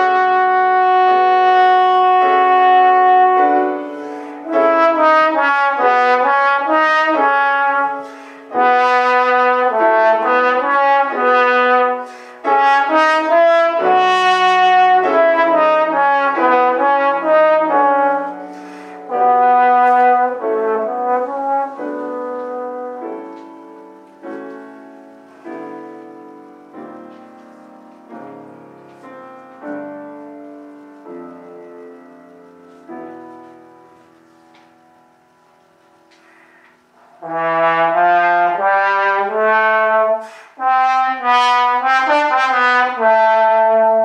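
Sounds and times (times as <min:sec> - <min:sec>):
trombone playing a melody: 0:00.0 - 0:24.0, 0:36.9 - 0:44.0
grand piano accompaniment: 0:00.0 - 0:44.0.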